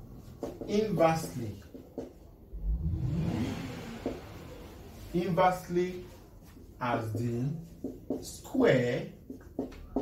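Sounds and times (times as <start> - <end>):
vehicle engine rumbling past: 2.5 - 5.7.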